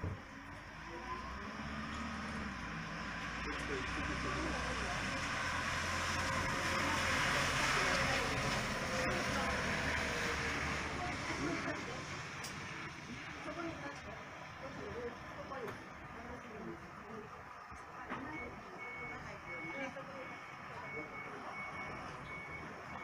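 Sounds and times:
bus engine running low: 0:00.0 - 0:23.0
tyres hissing on wet pavement: 0:00.9 - 0:17.6.

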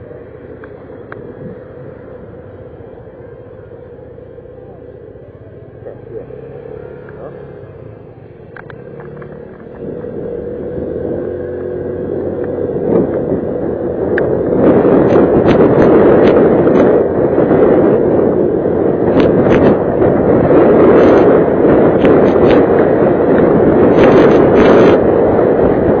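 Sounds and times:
motor scooter engine accelerating: 0:00.0 - 0:26.0
wind buffeting microphone: 0:00.0 - 0:26.0.

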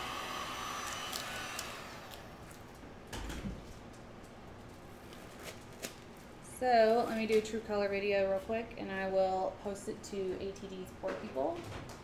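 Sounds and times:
heat gun blowing with hiss: 0:00.0 - 0:02.3.

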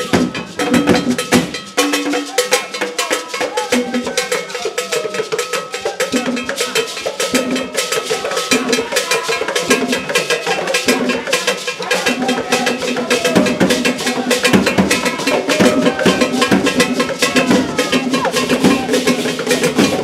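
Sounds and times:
drum ensemble playing fast rhythm: 0:00.0 - 0:20.0
metal bell ringing: 0:00.0 - 0:20.0.

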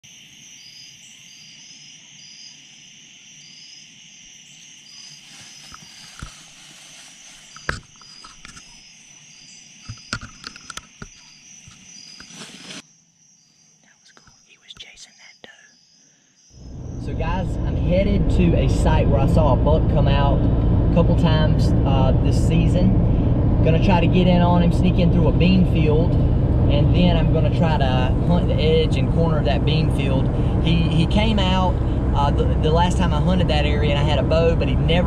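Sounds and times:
insect chorus drone: 0:00.0 - 0:35.0
clicks of gear being handled: 0:07.5 - 0:08.8, 0:09.8 - 0:12.3.

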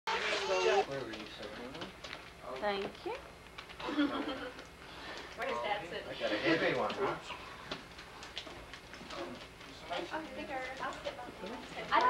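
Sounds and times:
faint voices: 0:00.1 - 0:01.9.

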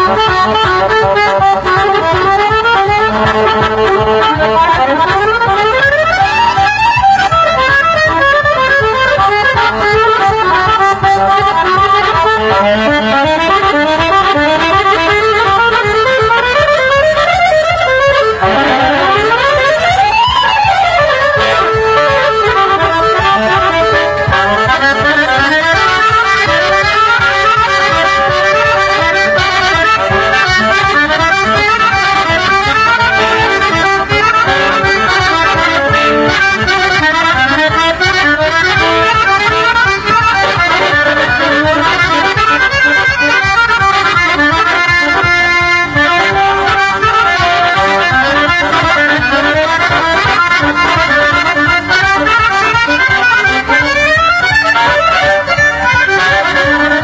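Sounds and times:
accordion trio playing folk music: 0:00.0 - 0:57.0.

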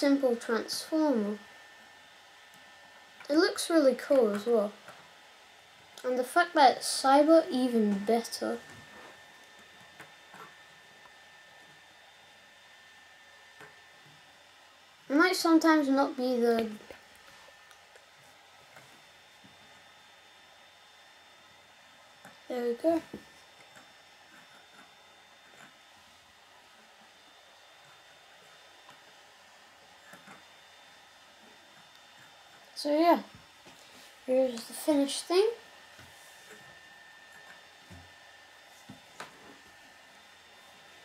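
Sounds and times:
high room hum: 0:00.0 - 0:41.0.

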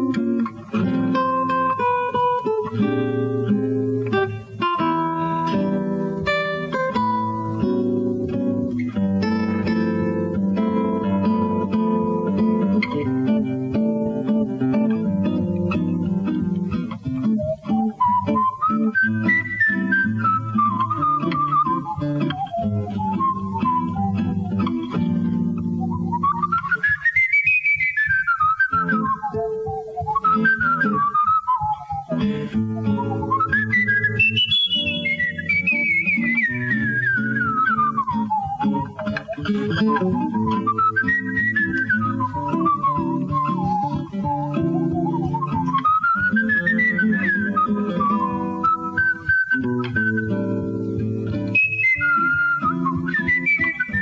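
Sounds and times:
acoustic guitar low notes: 0:00.0 - 0:54.0
man whistling jazz melody: 0:00.0 - 0:54.0.

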